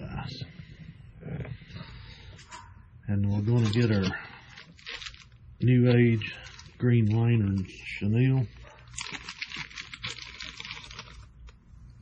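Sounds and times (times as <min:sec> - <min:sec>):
plastic packet crinkling: 0:03.3 - 0:05.4, 0:06.0 - 0:07.7, 0:08.8 - 0:11.6.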